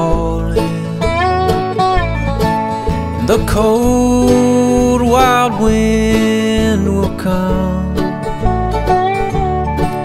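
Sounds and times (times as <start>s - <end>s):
person singing: 0.0s - 1.1s, 3.1s - 8.2s
bluegrass band playing: 0.0s - 10.0s.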